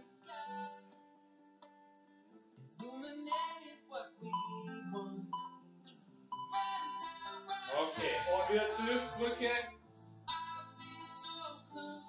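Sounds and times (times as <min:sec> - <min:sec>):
sustained instrumental music: 0:07.7 - 0:10.2.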